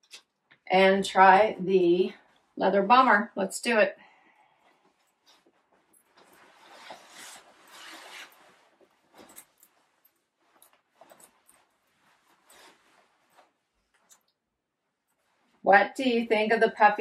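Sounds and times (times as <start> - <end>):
leather jacket rustling: 4.8 - 14.2.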